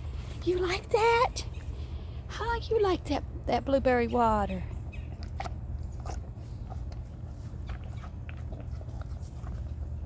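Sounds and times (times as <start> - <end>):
calf slurping from a cup: 5.2 - 10.0.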